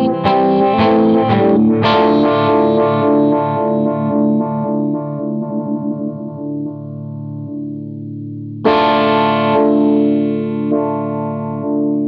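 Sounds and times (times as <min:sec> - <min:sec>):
electric guitar chord with vibe: 0:00.0 - 0:12.0.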